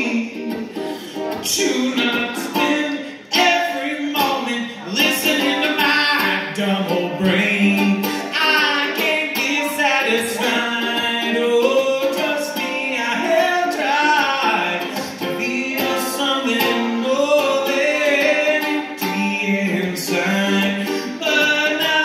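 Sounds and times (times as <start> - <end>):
man singing: 0.0 - 22.0
ukulele strumming: 0.0 - 22.0.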